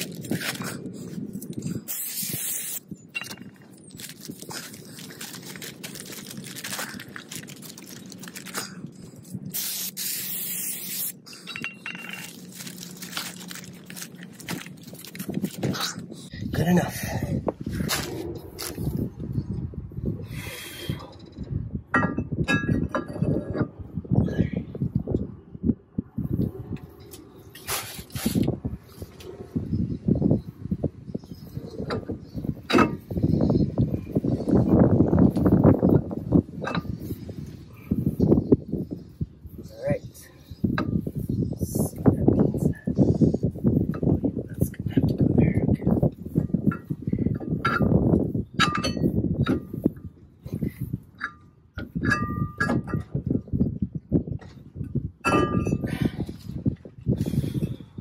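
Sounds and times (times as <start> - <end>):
metal parts knocking and clinking: 3.1 - 4.2, 11.3 - 15.0, 48.6 - 49.7
aerosol spray hissing: 9.6 - 11.2.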